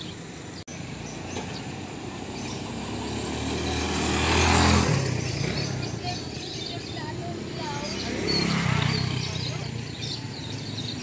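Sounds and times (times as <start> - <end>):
small motorcycle engine passing: 0.8 - 11.0.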